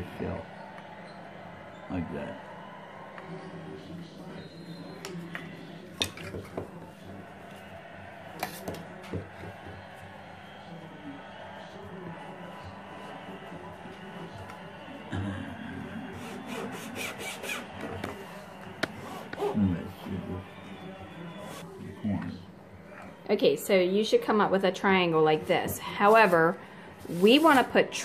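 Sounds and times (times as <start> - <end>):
hand saw cutting wood: 16.2 - 17.7.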